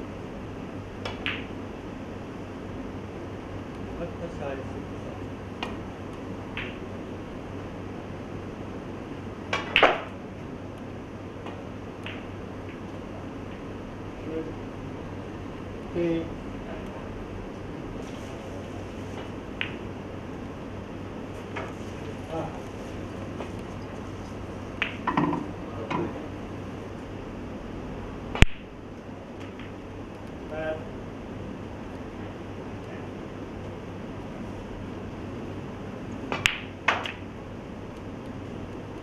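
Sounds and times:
low room hum: 0:00.0 - 0:39.0
snooker balls clicking: 0:01.0 - 0:01.5, 0:06.6 - 0:06.8, 0:09.5 - 0:10.1, 0:11.4 - 0:13.7, 0:19.2 - 0:19.8, 0:24.8 - 0:26.2, 0:36.2 - 0:37.3
snooker ball click: 0:36.3 - 0:37.2.

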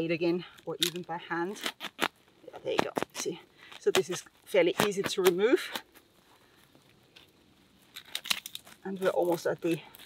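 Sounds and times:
crackles and snaps of pruning snips: 0:00.0 - 0:10.0.

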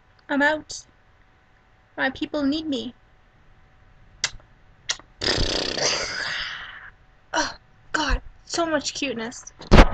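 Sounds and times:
woman speaking: 0:02.0 - 0:03.0, 0:07.4 - 0:09.6.

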